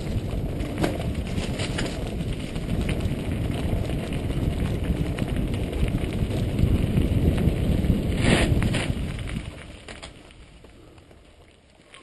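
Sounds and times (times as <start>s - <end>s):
bike clicks and rattles: 0.0s - 12.0s
bike tyre noise: 0.0s - 12.0s
wind rumble on microphone: 0.0s - 12.0s.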